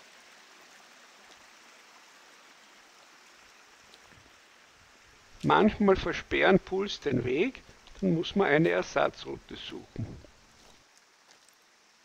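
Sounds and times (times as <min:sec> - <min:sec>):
faint stream rushing: 0:00.0 - 0:12.0.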